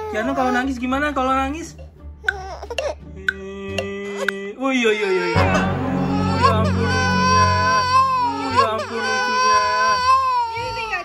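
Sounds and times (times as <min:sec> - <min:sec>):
infant crying: 0:02.2 - 0:03.0, 0:04.9 - 0:11.0.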